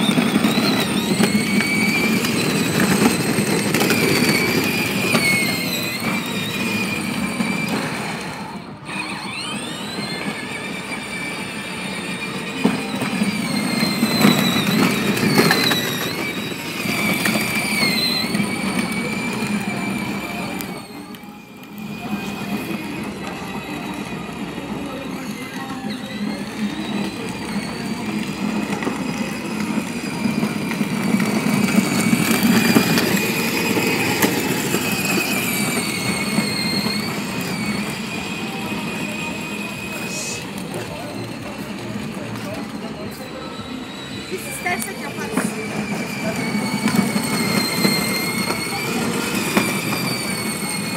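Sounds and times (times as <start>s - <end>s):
plastic wheels rumbling on pavement: 0.0s - 50.9s
toy car electric motor whine: 0.0s - 50.9s.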